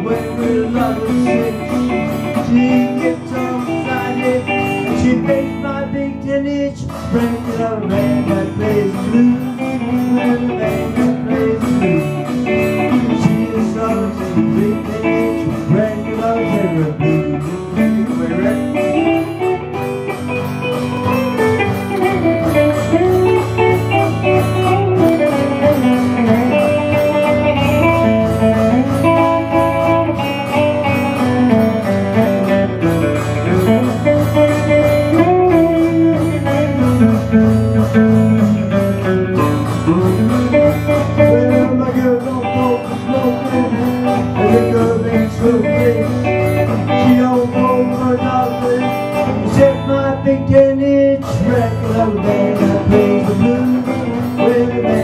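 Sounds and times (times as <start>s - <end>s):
acoustic guitar: 0.0s - 55.0s
electric guitar lead lines: 0.0s - 55.0s.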